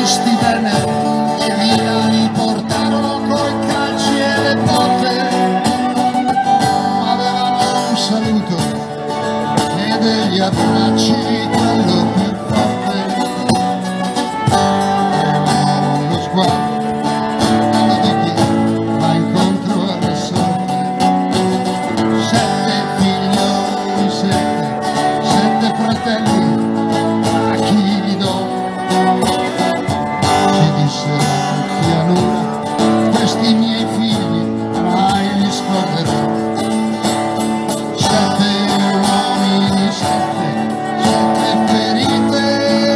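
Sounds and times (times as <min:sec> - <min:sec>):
violin melody: 0:00.0 - 0:20.0, 0:20.7 - 0:33.2
acoustic guitar strumming: 0:00.0 - 0:42.9
electric guitar: 0:00.0 - 0:42.9.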